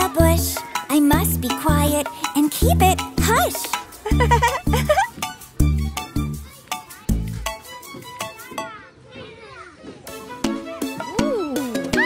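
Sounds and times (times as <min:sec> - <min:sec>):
soft children's song music: 0:00.0 - 0:09.0
cartoon children calling out: 0:11.2 - 0:12.0.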